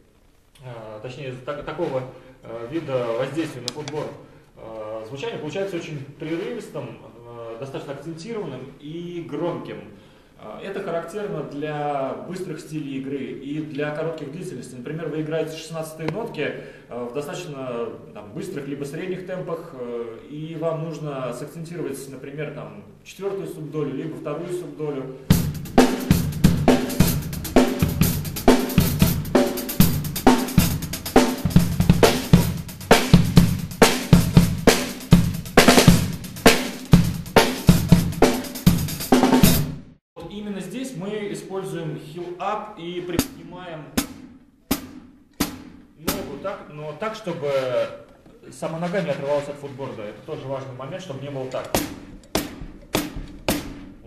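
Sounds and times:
drum kit groove: 25.2s - 40.0s, 42.3s - 47.3s, 48.7s - 54.0s
hi-hat pedal thud: 44.0s - 46.4s, 51.6s - 54.0s.

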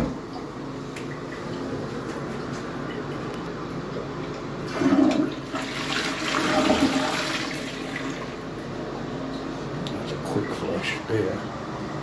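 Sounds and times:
toilet flushing: 4.6s - 8.6s.

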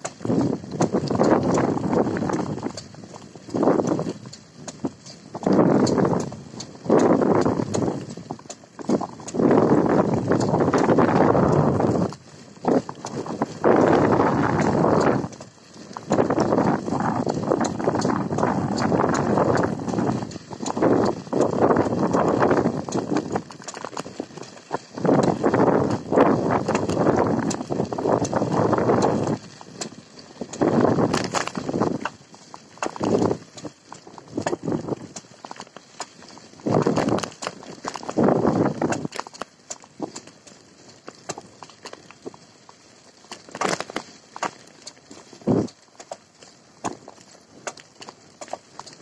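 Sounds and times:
rough rumbling of wheels on dirt track: 0.0s - 49.0s
wind noise on microphone: 0.0s - 49.0s.

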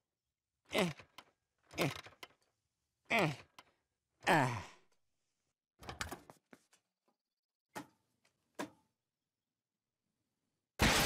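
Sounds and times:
man grunting with effort: 0.7s - 1.1s, 1.7s - 2.1s, 3.1s - 3.6s, 4.2s - 4.8s.

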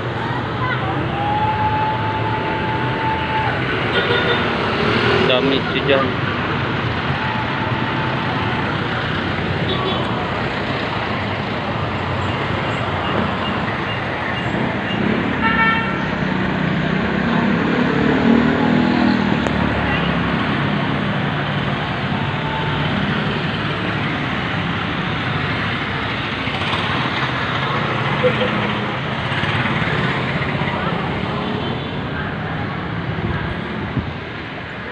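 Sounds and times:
motorcycles passing: 0.0s - 34.9s
street traffic: 0.0s - 34.9s
vehicle horn toot: 15.4s - 16.0s
engine passing: 16.2s - 31.5s.

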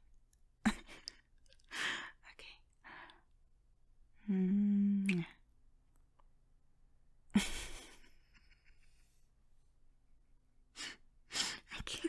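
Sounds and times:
woman kissing: 5.0s - 5.3s.

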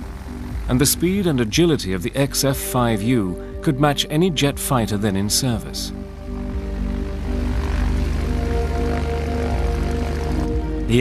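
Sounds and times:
background music: 0.0s - 11.0s
propeller aircraft droning: 0.0s - 11.0s.

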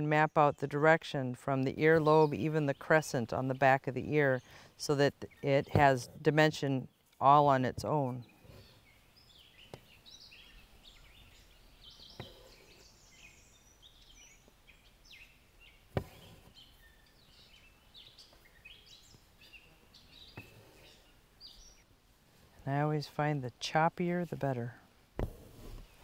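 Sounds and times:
birds singing and chirping: 0.0s - 22.0s.

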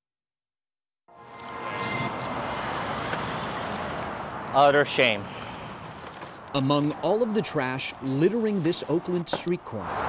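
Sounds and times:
city street traffic: 1.1s - 10.0s.

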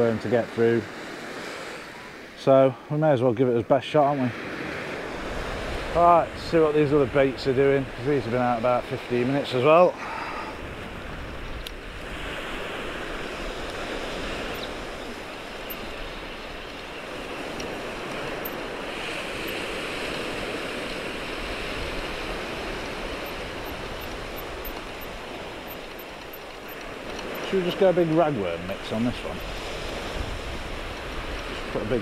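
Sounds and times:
surf washing up beach: 0.0s - 32.0s.

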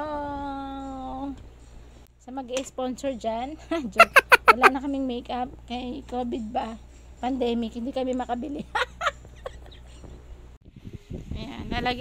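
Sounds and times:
woman laughing: 3.7s - 4.8s, 8.6s - 10.0s.

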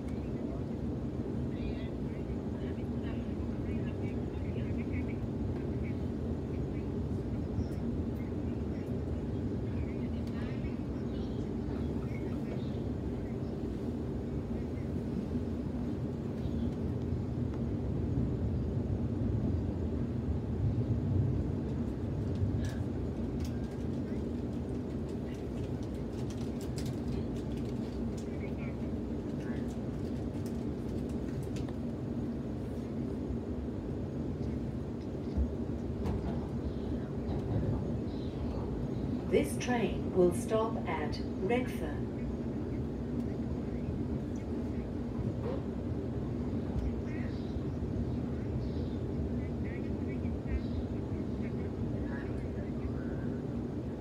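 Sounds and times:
electric train rumble and hum: 0.0s - 54.0s
faint passenger voices: 0.0s - 54.0s.

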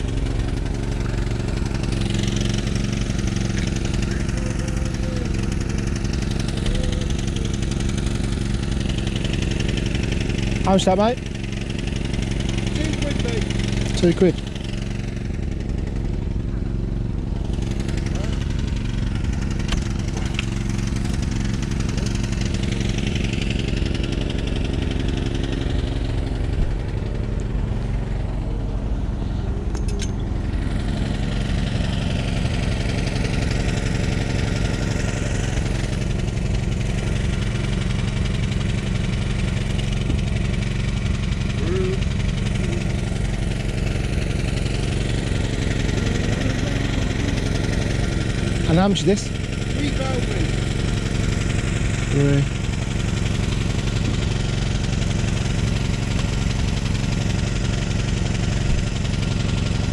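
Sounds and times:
low engine hum: 0.0s - 59.9s
people talking: 3.9s - 5.4s, 10.7s - 11.2s, 12.8s - 14.4s, 41.6s - 42.0s, 48.7s - 50.5s, 52.1s - 52.5s.

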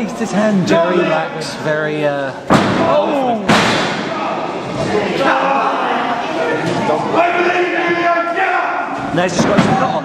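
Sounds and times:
crowd shouting and chanting: 0.0s - 1.6s, 2.6s - 10.0s.

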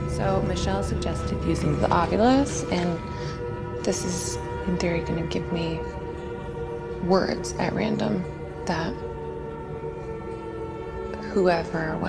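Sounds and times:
droning background music: 0.0s - 12.0s.

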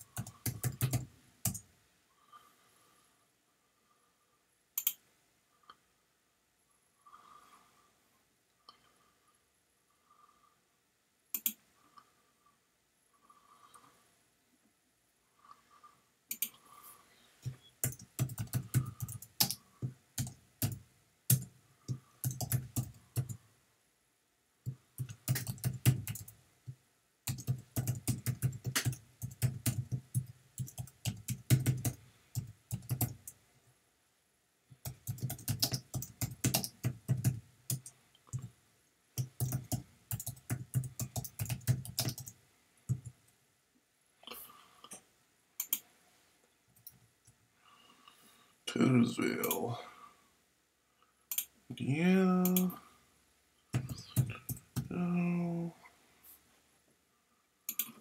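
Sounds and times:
typing on computer keyboard: 0.0s - 1.6s, 11.4s - 11.6s, 16.3s - 16.6s, 17.4s - 19.6s, 20.2s - 23.4s, 25.0s - 26.4s, 27.3s - 33.4s, 34.8s - 38.5s, 39.2s - 43.1s, 51.3s - 51.5s, 53.7s - 54.9s, 57.7s - 58.0s.

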